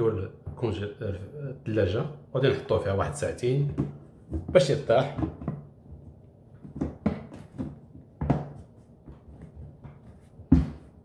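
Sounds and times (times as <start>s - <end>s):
plastic box knocks and clacks: 3.6s - 5.8s, 6.6s - 11.0s.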